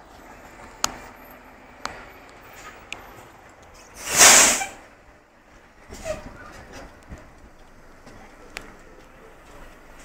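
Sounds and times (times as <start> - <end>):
compressed air hiss from bus: 3.9 - 4.8.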